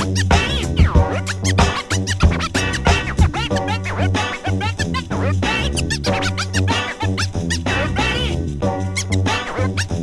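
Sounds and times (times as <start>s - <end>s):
turntable scratching: 0.0s - 8.4s, 9.0s - 10.0s
steady bass line: 0.0s - 10.0s.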